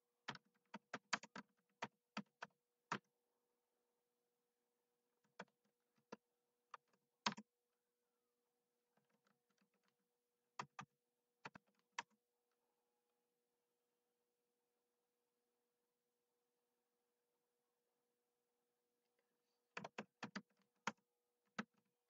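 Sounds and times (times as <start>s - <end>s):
typing on computer keyboard: 0.3s - 3.0s, 5.2s - 6.2s, 6.8s - 7.5s, 10.6s - 12.2s, 19.8s - 21.9s.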